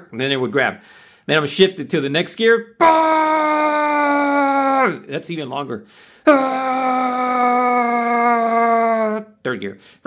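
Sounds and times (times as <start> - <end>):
man imitating engine vocally: 2.8 - 5.1, 6.3 - 9.4.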